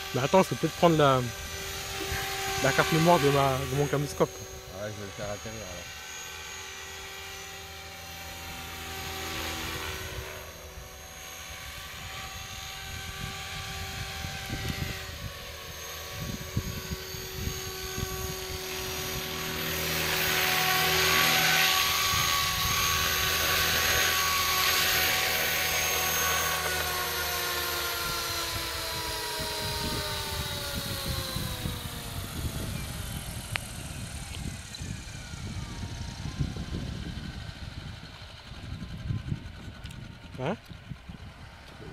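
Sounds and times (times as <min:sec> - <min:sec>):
rc helicopter motor and rotor whine: 0:00.0 - 0:41.9.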